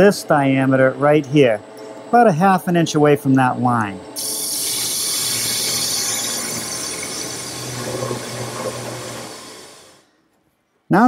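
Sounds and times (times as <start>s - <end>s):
lathe low hum: 0.0s - 10.2s
lathe tool cutting wood hiss: 4.2s - 10.1s.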